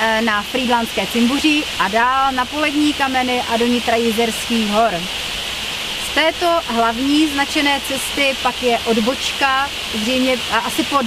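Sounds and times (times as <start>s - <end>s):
person speaking: 0.0s - 5.1s
waterfall rushing: 0.0s - 11.0s.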